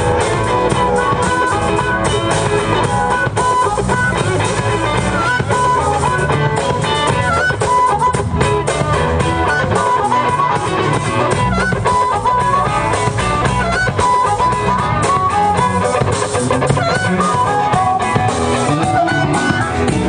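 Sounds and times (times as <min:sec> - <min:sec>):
amplified harmonica: 0:00.0 - 0:20.0
drums: 0:00.0 - 0:20.0
electric guitar: 0:00.0 - 0:20.0.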